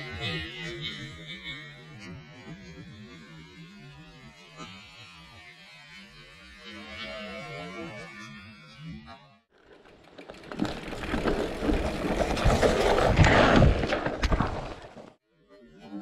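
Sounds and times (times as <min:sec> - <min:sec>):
bike knocking and rattling: 0:09.5 - 0:15.2
tyres on dirt and roots: 0:09.5 - 0:15.2.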